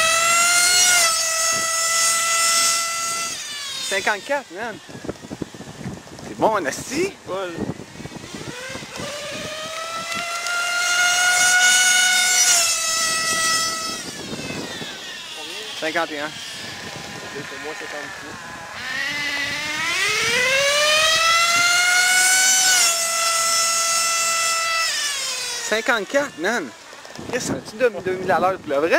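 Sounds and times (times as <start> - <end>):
model car engine screaming: 0.0 - 5.8, 6.7 - 26.8.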